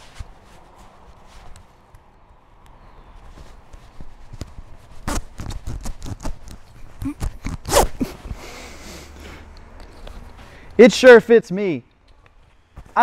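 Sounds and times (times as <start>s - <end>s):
straps rustling: 0.0s - 10.7s.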